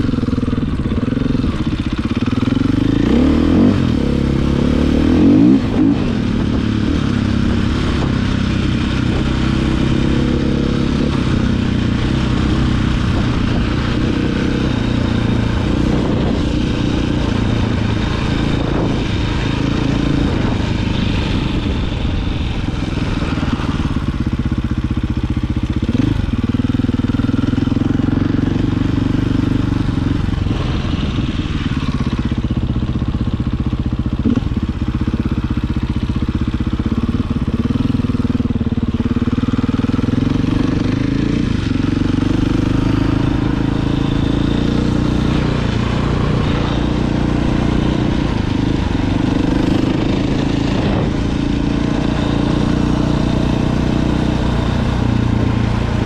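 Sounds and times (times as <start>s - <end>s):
dirt bike engine revving: 0.0s - 24.6s, 25.7s - 33.0s, 34.2s - 36.0s, 36.8s - 56.0s.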